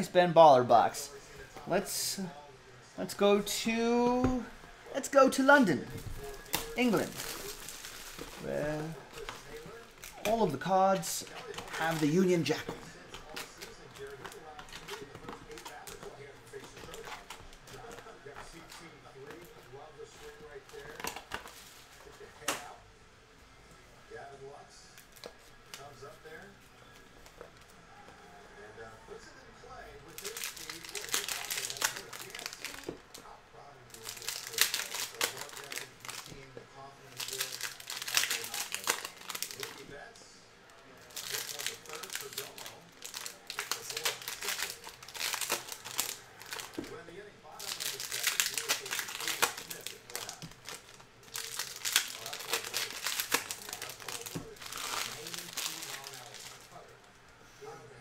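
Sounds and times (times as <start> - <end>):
foil wrappers tearing and crinkling: 6.2 - 19.3, 30.0 - 33.0, 33.9 - 36.4, 37.0 - 40.0, 41.1 - 46.9, 47.5 - 56.8.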